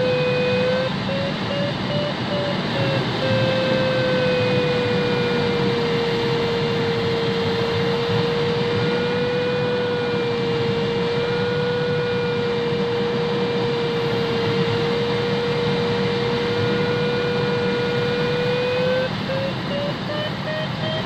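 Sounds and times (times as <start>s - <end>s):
airflow rushing around cockpit: 0.0s - 21.0s
variometer electronic tone: 0.0s - 21.0s.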